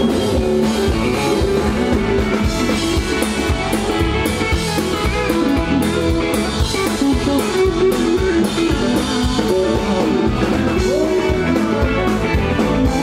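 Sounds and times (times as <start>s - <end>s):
drum kit steady beat: 0.0s - 13.0s
electric guitar: 0.0s - 13.0s
fiddle: 0.0s - 13.0s.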